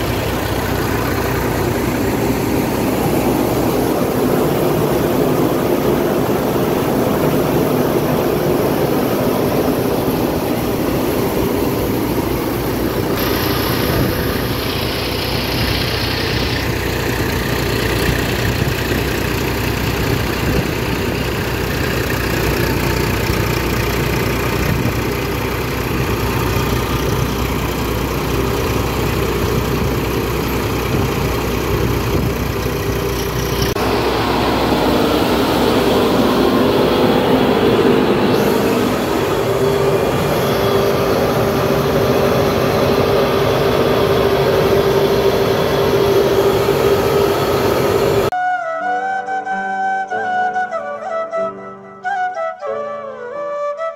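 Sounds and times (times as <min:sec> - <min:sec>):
tractor engine under load: 0:00.0 - 0:48.4.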